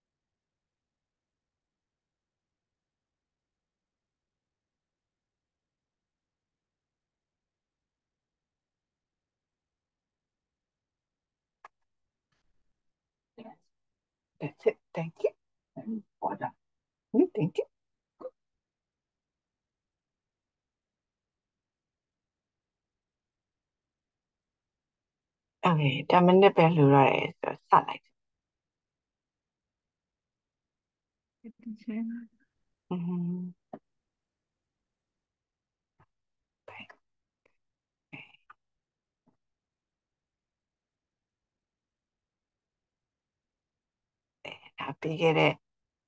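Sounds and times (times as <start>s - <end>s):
brief vocal syllable: 32.9s - 33.6s.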